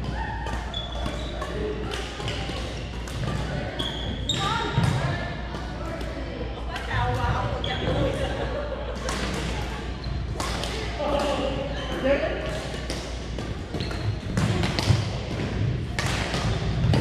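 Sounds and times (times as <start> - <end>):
indistinct voices echoing in a hall: 0.0 - 17.0
badminton thuds and knocks: 12.5 - 17.0.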